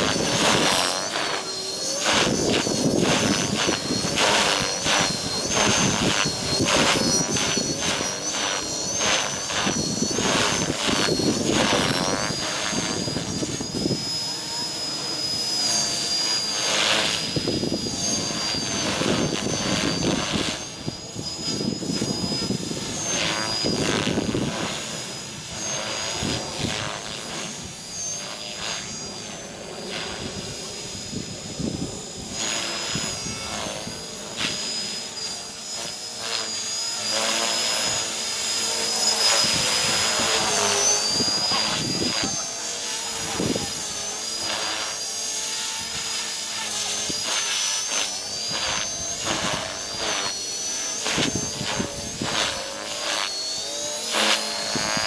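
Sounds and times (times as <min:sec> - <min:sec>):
model helicopter drive whine: 0:00.0 - 0:55.0
rotor blades whooshing: 0:00.0 - 0:55.0.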